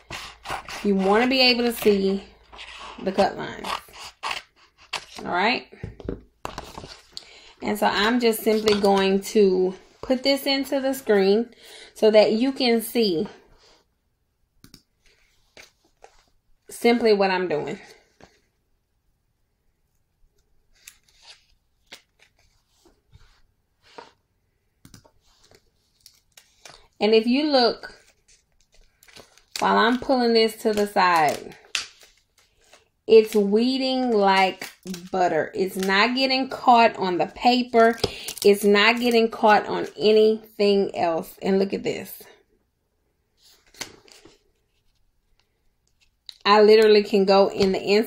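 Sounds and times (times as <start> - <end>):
vinyl sheet rustling: 0.0 - 11.2, 15.0 - 16.4, 20.4 - 24.2, 25.0 - 40.3, 43.4 - 48.0
vinyl sheet crinkling: 20.6 - 24.1, 25.1 - 27.0, 27.8 - 36.3.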